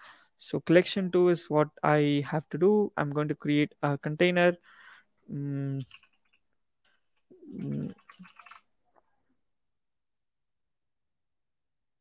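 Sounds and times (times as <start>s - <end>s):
computer keyboard typing: 5.8s - 6.4s.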